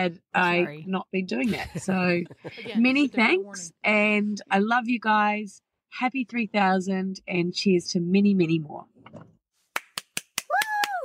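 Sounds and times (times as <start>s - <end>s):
quick sharp hand claps: 9.7s - 11.0s.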